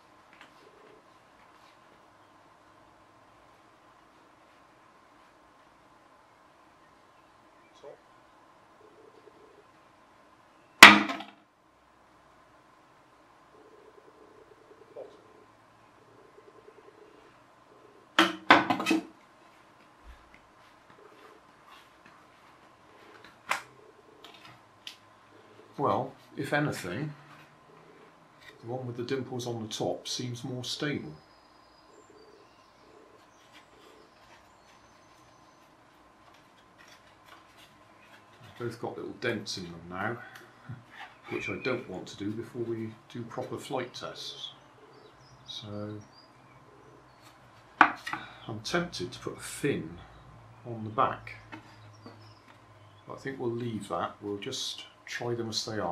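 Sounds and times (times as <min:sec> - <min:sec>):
faint rustles of handling: 0:00.0 - 0:02.1, 0:19.2 - 0:23.5, 0:32.6 - 0:43.9
faint bird chirps: 0:06.2 - 0:08.1, 0:10.4 - 0:10.8, 0:13.5 - 0:18.2, 0:30.2 - 0:36.1, 0:39.6 - 0:48.6
pigeon cooing: 0:08.8 - 0:09.8, 0:13.5 - 0:18.2, 0:20.0 - 0:26.2, 0:26.8 - 0:28.6, 0:31.8 - 0:35.7, 0:40.2 - 0:42.7, 0:44.1 - 0:48.4.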